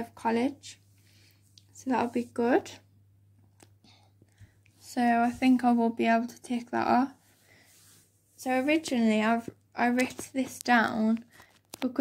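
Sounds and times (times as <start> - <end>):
person breathing: 0.9 - 1.6, 7.2 - 8.2
person speaking: 1.7 - 2.8, 8.4 - 12.0.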